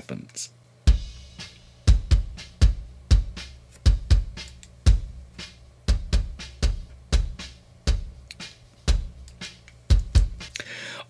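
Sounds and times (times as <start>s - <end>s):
bass drum steady beat: 0.9s - 10.6s.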